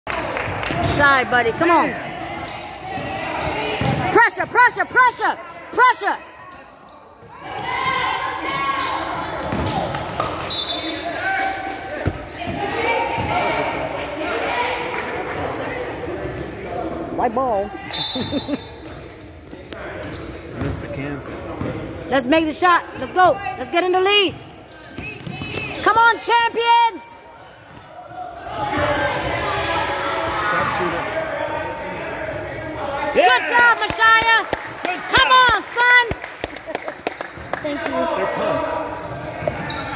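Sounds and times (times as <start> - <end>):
basketball court noise: 0.1 - 17.0, 17.7 - 39.9
voices shouting in a gym: 0.1 - 36.5, 37.5 - 39.9
basketball bouncing: 2.9 - 4.6.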